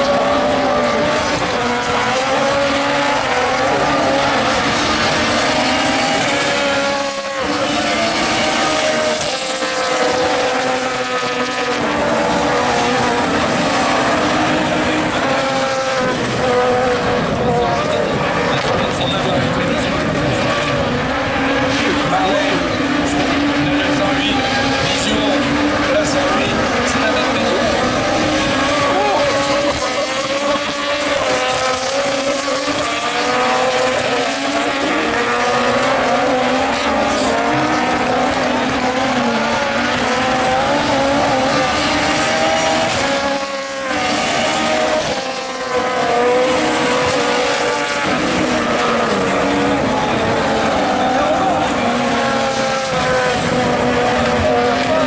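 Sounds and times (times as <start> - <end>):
racing car engines revving: 0.0 - 55.0.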